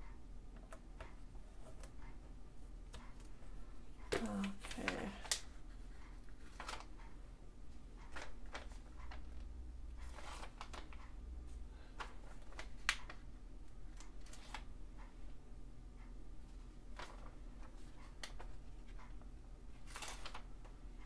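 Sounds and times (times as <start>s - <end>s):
paper rustling: 6.4s - 6.9s, 8.1s - 9.2s, 10.0s - 11.0s, 12.0s - 13.2s, 16.9s - 18.6s, 19.9s - 20.5s.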